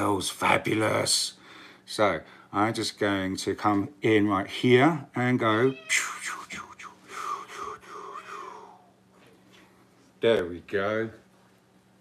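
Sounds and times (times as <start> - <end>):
person breathy vocalizing: 6.0 - 8.9.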